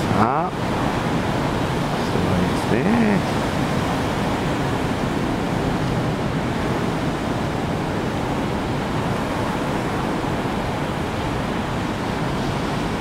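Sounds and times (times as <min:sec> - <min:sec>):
heavy surf on rocks: 0:00.0 - 0:13.0.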